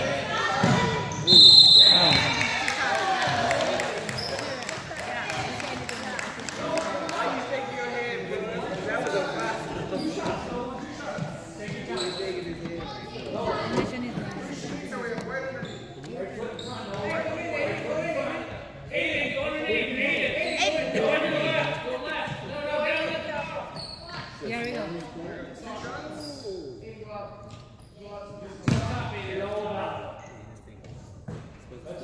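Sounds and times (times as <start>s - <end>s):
indistinct voices in hall: 0.0s - 32.0s.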